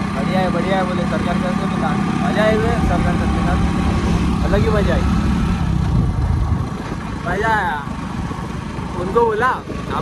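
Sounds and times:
motorcycle engine running: 0.0 - 10.0
wind noise on microphone: 3.0 - 10.0.

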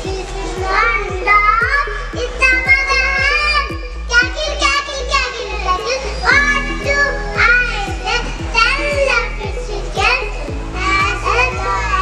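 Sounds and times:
backing music with beat: 0.0 - 12.0
children singing into microphone: 0.0 - 12.0.

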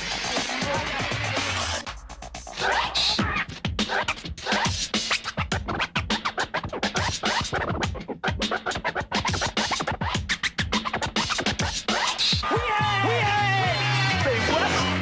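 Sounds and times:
hip-hop beat: 0.0 - 15.0
music with steady bass line: 0.0 - 15.0
vinyl scratching: 0.0 - 15.0.

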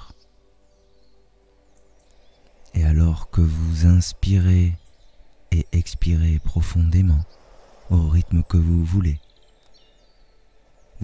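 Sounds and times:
soft steady hiss: 0.0 - 11.0
songbird chirps: 0.0 - 11.0.

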